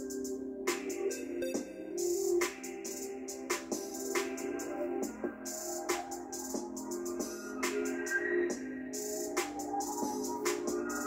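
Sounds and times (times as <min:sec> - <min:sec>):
electronic music with steady beat: 0:00.0 - 0:11.0.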